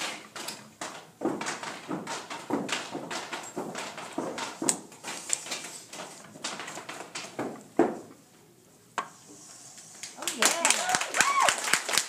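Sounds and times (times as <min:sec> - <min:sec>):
feet stomping: 0:00.0 - 0:08.2
hands clapping: 0:10.0 - 0:12.0.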